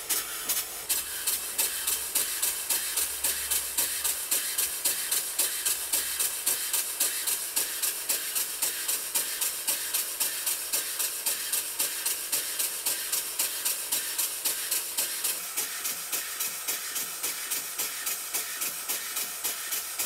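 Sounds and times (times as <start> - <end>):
steam engine hiss and exhaust puffs: 0.0 - 20.0.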